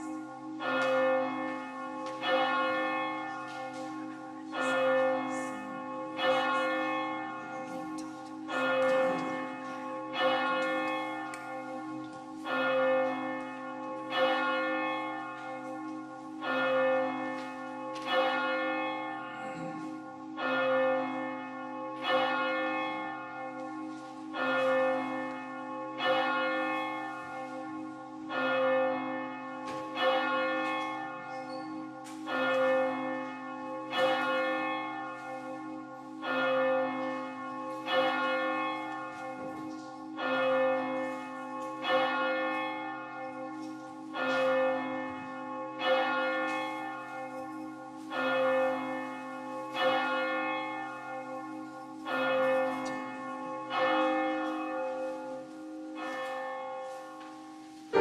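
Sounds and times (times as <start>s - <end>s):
church bell tolling: 0.0s - 58.0s.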